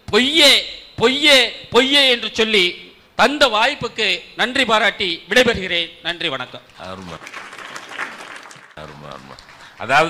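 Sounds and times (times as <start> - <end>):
audience applause: 7.1 - 9.9
man speaking: 8.8 - 10.0.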